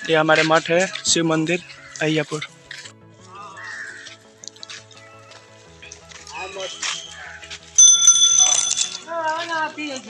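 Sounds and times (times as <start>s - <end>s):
faint background music beat: 0.0s - 10.0s
small metal bell ringing: 7.8s - 9.1s.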